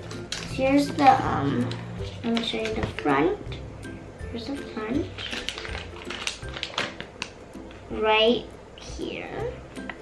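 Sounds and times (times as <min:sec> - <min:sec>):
background music: 0:00.0 - 0:10.0
paper leaflet crackling: 0:00.2 - 0:03.0, 0:05.0 - 0:07.4.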